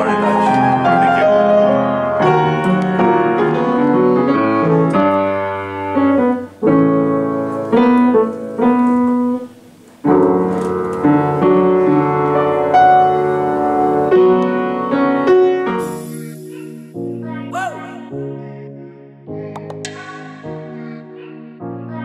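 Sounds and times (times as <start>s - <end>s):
upright piano playing: 0.0s - 22.0s.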